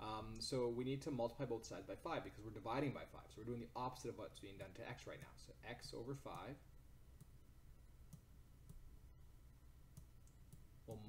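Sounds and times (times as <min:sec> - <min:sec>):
low room tone hum: 0:00.0 - 0:11.0.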